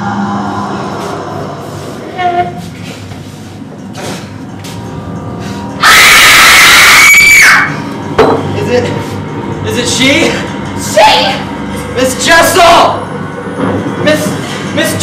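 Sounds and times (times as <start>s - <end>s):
eerie droning underscore: 0.0s - 15.0s
person screaming: 5.8s - 7.8s.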